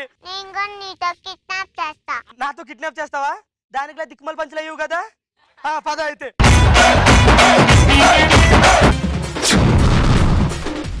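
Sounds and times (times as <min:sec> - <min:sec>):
deep boom hit: 0:08.5 - 0:11.0.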